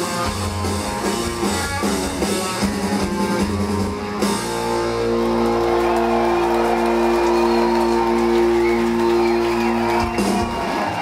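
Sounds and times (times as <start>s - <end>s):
rock band holding a chord: 0.0s - 11.0s
crowd shouting: 5.2s - 11.0s.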